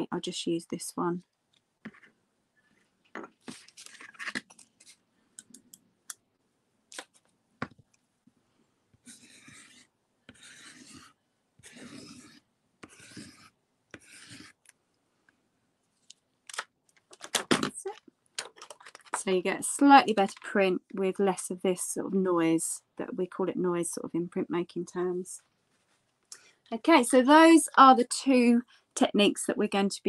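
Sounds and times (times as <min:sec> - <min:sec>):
pencil scratching on paper: 0:01.8 - 0:02.8, 0:08.9 - 0:14.7
paper rustling: 0:03.3 - 0:05.0, 0:18.4 - 0:19.2.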